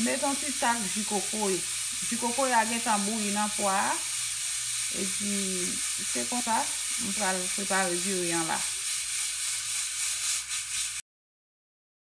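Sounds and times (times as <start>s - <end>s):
pot hissing on stove: 0.0s - 11.0s.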